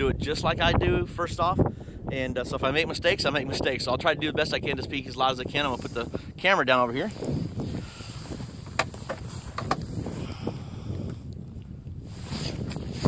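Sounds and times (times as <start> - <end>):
wind buffeting microphone: 0.0 - 13.0
camera handling clicks and knocks: 8.7 - 9.9.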